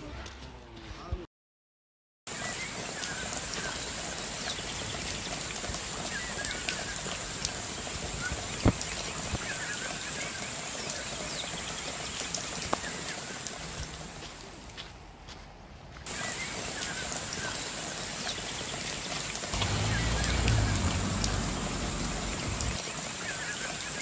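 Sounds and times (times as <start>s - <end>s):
birds chirping: 16.1s - 24.0s
steady rushing hiss: 19.5s - 23.0s.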